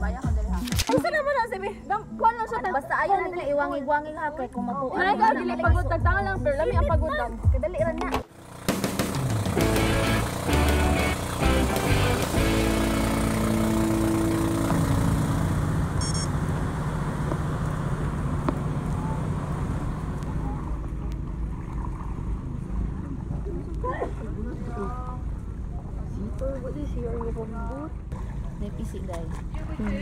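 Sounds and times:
music: 0.0 - 14.3
boat engine humming: 8.3 - 30.0.

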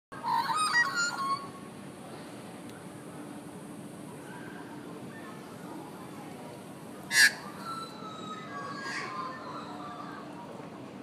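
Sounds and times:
low steady background noise: 0.1 - 11.0
magpies warbling: 0.2 - 1.5, 7.1 - 10.3.

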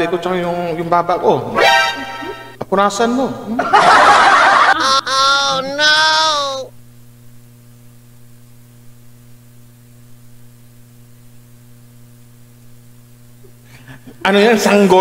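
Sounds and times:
faint electrical hum: 0.0 - 15.0.

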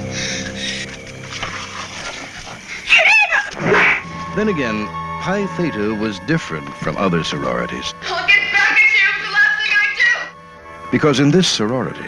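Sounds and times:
wavering cry: 2.8 - 4.0.

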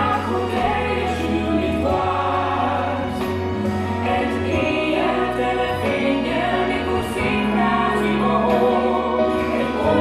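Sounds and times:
choir singing held notes: 4.0 - 10.0.

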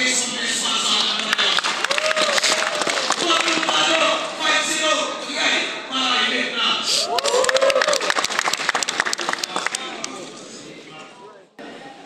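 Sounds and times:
audience applauding: 1.0 - 4.2, 7.0 - 10.2
person cheering: 1.9 - 3.0, 7.0 - 8.1.

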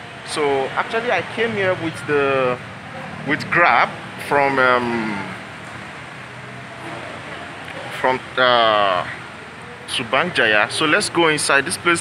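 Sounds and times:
background traffic: 0.0 - 12.0
man saying um: 4.7 - 5.4.

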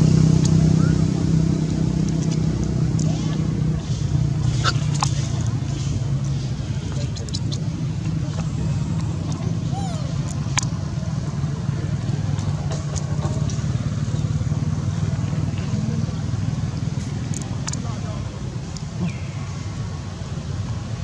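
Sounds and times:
low engine-like drone: 0.0 - 21.0.

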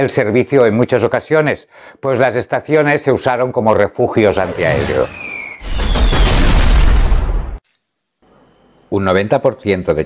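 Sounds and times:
loud explosion with deep rumble: 4.5 - 7.6
falling whistle: 4.6 - 6.7.

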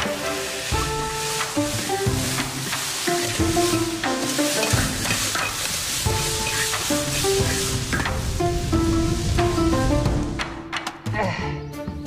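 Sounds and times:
ladle scraping wok: 0.0 - 8.4
greens sizzling in wok: 0.0 - 10.1
background music melody: 0.0 - 12.0.

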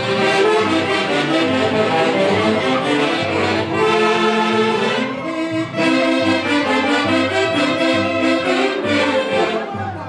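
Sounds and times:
wind band playing dance music: 0.0 - 10.0.

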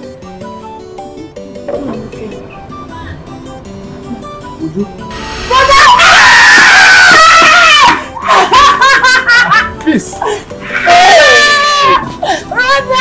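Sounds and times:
light music of picked notes: 0.0 - 5.5, 8.0 - 13.0
woman shrieking: 5.3 - 8.4, 10.6 - 13.0.

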